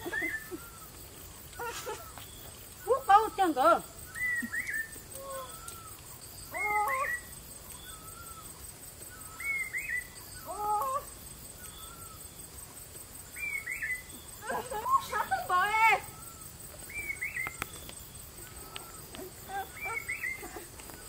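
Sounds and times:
bird calling: 0:00.0 - 0:12.7, 0:13.3 - 0:21.0.

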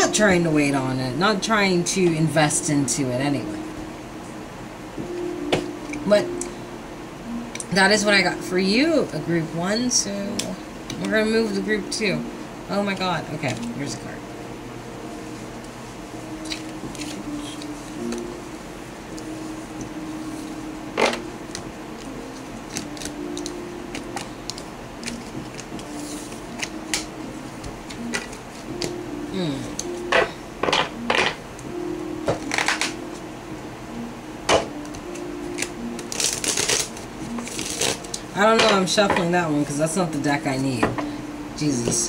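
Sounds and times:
background music with low notes: 0:00.0 - 0:42.0.

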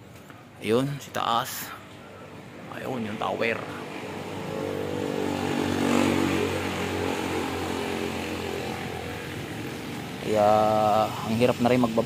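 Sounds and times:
engine passing by: 0:01.9 - 0:12.0.

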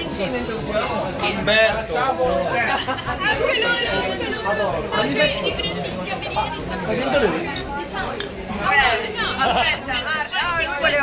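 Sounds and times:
group chatter: 0:00.0 - 0:11.0.

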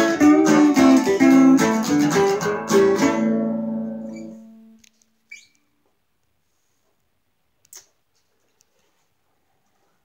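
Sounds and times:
guitar note: 0:00.0 - 0:04.9
short high rising squeak: 0:05.3 - 0:05.6.

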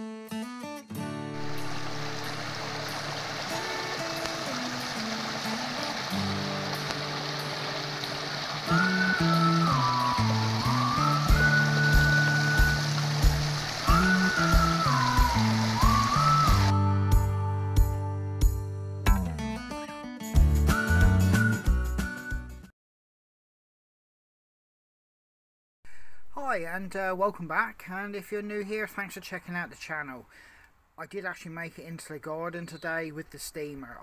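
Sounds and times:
guitar music: 0:00.0 - 0:22.2
sliding melody: 0:00.9 - 0:18.4
stream rushing over stones: 0:01.4 - 0:16.7.

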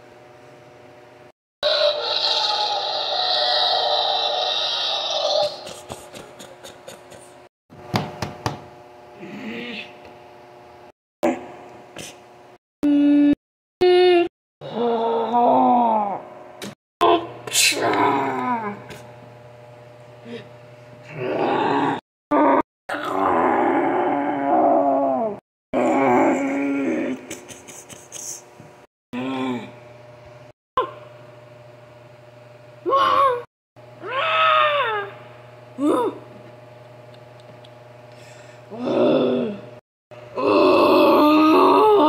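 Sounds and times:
person groaning like a monster: 0:01.6 - 0:07.2, 0:09.2 - 0:09.9, 0:12.9 - 0:16.2, 0:17.0 - 0:18.8, 0:21.1 - 0:27.3, 0:29.1 - 0:29.8, 0:38.7 - 0:42.0.

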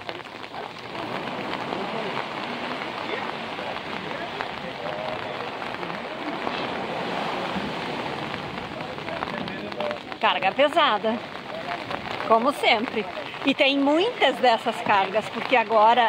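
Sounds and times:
falling rain: 0:00.0 - 0:16.0
small waves breaking on sand: 0:00.0 - 0:16.0.

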